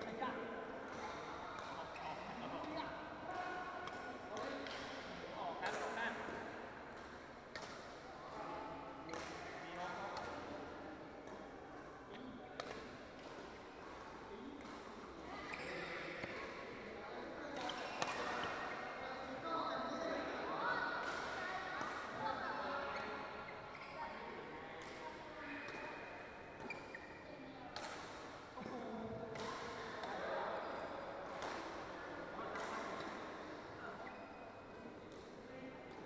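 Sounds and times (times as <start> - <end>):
voices chattering in echoing hall: 0.0 - 36.0
sneakers squeaking on court: 15.3 - 16.4, 26.6 - 27.3.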